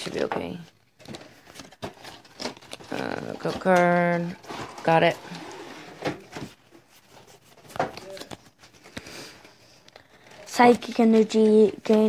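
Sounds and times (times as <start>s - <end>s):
cards ticking and rustling: 0.3s - 5.2s, 6.4s - 12.0s.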